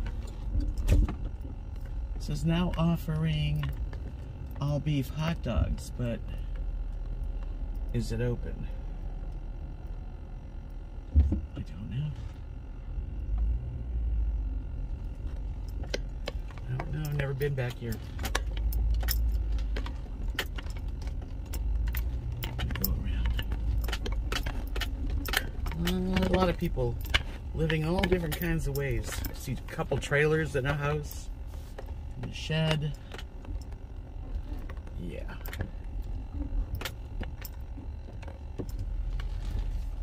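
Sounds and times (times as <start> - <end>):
car cabin rumble: 0.0 - 40.0
light rattling clicks: 15.0 - 40.0.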